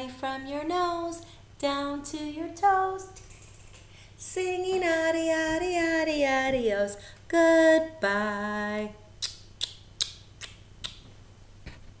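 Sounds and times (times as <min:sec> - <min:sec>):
woman blowing kisses: 0:09.2 - 0:11.1.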